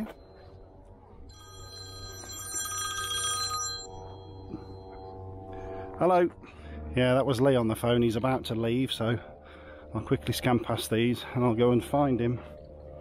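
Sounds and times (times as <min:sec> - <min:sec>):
phone musical ringtone: 0:01.3 - 0:05.3.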